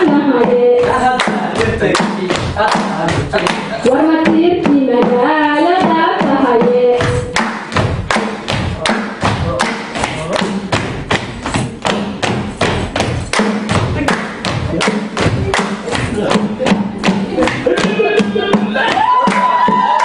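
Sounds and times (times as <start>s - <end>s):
feet stamping: 0.0s - 20.0s
rhythmic clapping: 0.0s - 20.0s.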